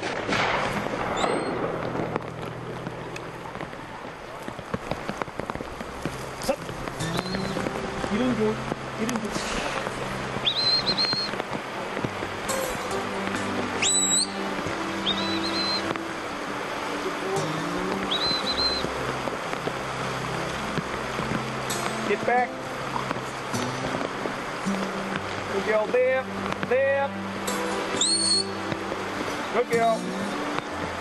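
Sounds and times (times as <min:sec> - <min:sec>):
background music: 0:00.0 - 0:04.1, 0:05.4 - 0:31.0
rushing river water: 0:00.0 - 0:31.0
high whistled notes: 0:01.1 - 0:01.7, 0:07.0 - 0:07.6, 0:10.4 - 0:11.4, 0:13.7 - 0:16.0, 0:17.4 - 0:18.9, 0:27.5 - 0:28.7.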